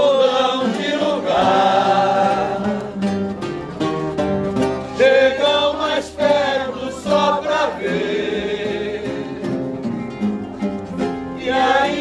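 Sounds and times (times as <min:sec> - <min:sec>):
acoustic guitars strumming: 0:00.0 - 0:12.0.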